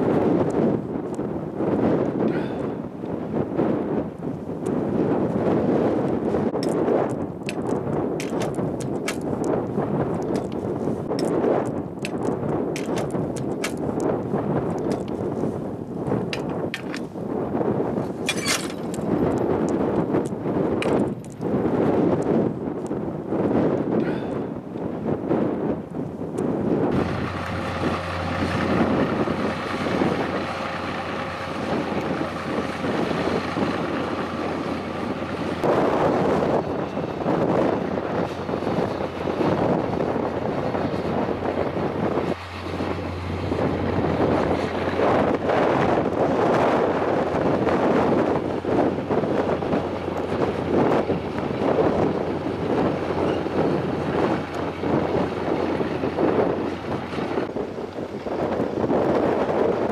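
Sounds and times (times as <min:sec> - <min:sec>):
wind gusting on microphone: 0:00.0 - 0:59.9
excavator diesel engine whining: 0:26.8 - 0:59.8.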